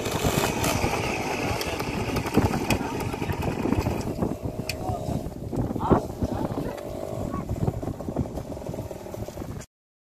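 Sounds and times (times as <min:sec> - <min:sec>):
motorcycle engine idling: 0:00.0 - 0:09.6
people talking: 0:01.2 - 0:03.9, 0:04.7 - 0:07.9.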